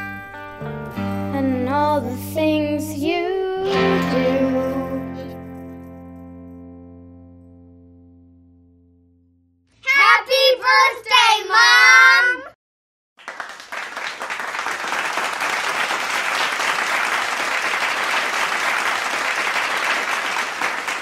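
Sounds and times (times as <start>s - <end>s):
children singing: 3.0s - 5.1s
applause: 13.2s - 21.0s.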